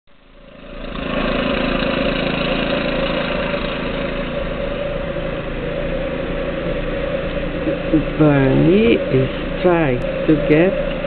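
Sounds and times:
steady mechanical drone: 0:00.1 - 0:11.0.

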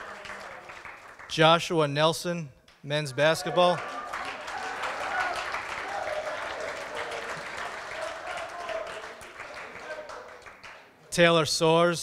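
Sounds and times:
audience applauding: 0:00.0 - 0:01.4, 0:03.2 - 0:10.9.

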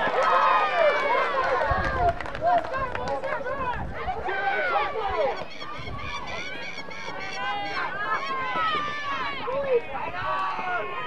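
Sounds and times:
people shouting and calling out: 0:00.0 - 0:11.0.

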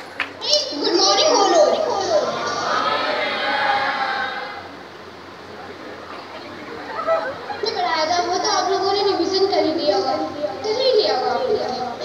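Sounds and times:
children talking: 0:00.0 - 0:04.8, 0:05.5 - 0:12.0
child shouting high-pitched: 0:00.4 - 0:02.3.

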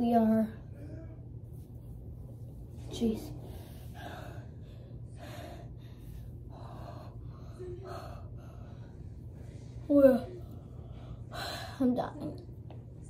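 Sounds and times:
girl breathing hard: 0:03.4 - 0:09.0, 0:10.7 - 0:11.9.

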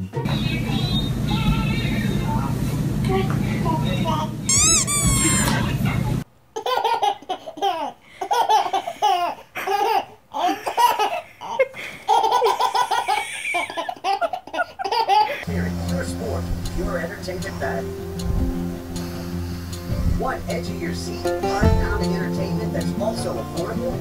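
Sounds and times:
baby laughing: 0:04.0 - 0:05.8, 0:06.6 - 0:15.5
high-pitched cry: 0:04.5 - 0:05.6.

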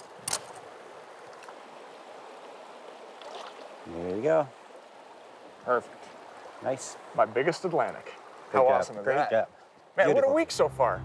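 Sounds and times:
river current rushing: 0:00.0 - 0:11.0.

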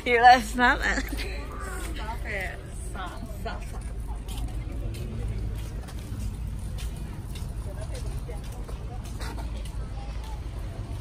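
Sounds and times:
low rumble of road vehicles: 0:00.0 - 0:11.0.

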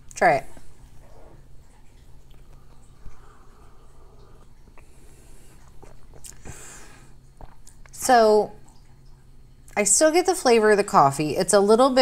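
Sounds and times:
sipping coffee from a mug: 0:00.9 - 0:07.8.

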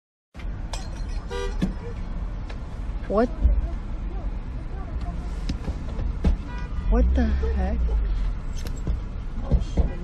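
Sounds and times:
car rumble in traffic: 0:00.4 - 0:10.0
car horn honk: 0:01.3 - 0:02.0, 0:06.4 - 0:07.1.

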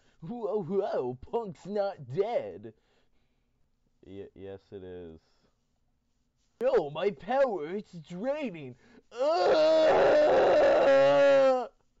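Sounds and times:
man's strained wail: 0:09.1 - 0:11.8.

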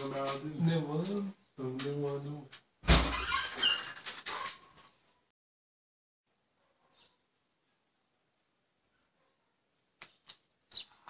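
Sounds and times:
loud thump: 0:02.8 - 0:03.2.

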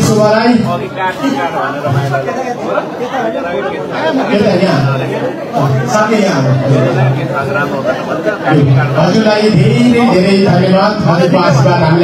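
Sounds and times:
man talking into microphone: 0:00.0 - 0:12.0
people chattering: 0:00.0 - 0:12.0.

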